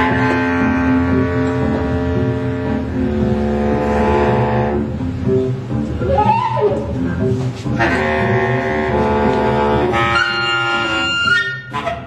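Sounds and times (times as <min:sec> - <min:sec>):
double bass rumble: 0:00.0 - 0:12.0
saxophones playing long notes: 0:00.0 - 0:12.0.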